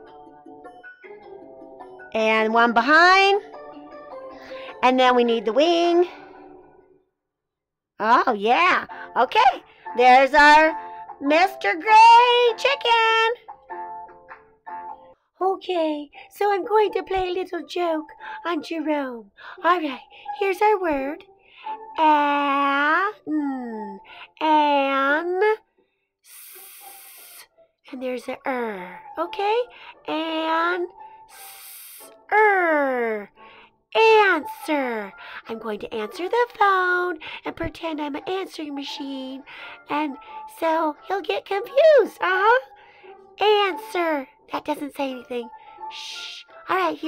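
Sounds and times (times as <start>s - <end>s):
person hissing: 26.3s - 27.4s, 31.3s - 32.1s.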